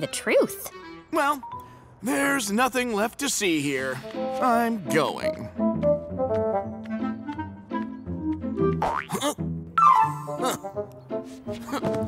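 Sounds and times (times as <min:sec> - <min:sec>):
playful cartoon music: 0:04.0 - 0:12.0.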